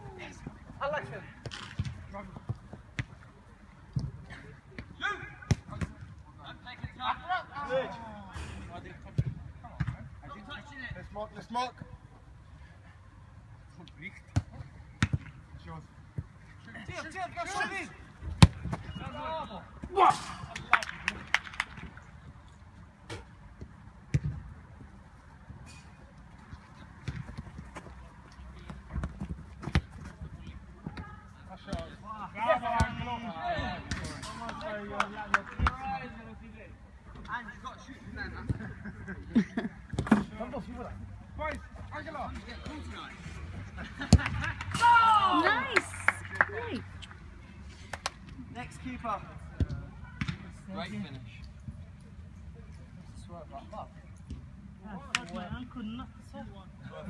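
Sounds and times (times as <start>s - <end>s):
players shouting: 18.9s - 21.0s, 44.1s - 46.8s
ball kicked and bouncing: 23.1s - 24.5s, 27.0s - 27.9s, 28.6s - 31.1s.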